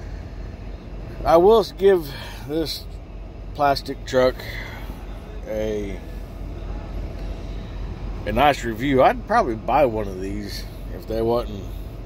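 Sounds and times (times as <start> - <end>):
truck cab hum: 0.0 - 12.0.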